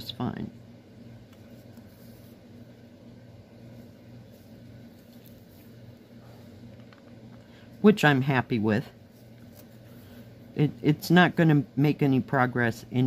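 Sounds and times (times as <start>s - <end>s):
low electrical hum: 0.0s - 13.0s
thread drawn through canvas: 1.2s - 6.7s, 9.0s - 10.5s.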